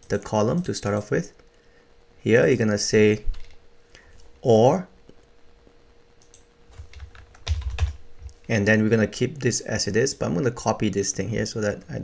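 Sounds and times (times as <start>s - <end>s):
typing on computer keyboard: 6.2s - 8.0s.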